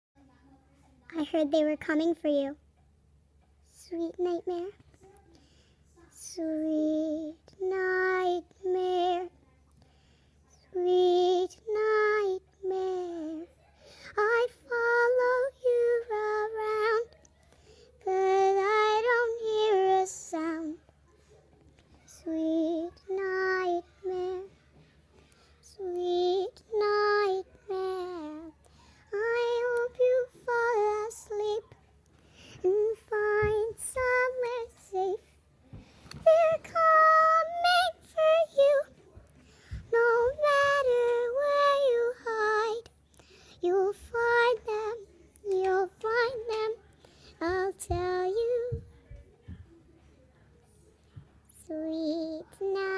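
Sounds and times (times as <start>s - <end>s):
child singing unaccompanied: 3.7s - 5.2s, 6.0s - 9.6s, 10.5s - 21.0s, 21.8s - 24.8s, 25.4s - 49.7s, 51.2s - 52.9s.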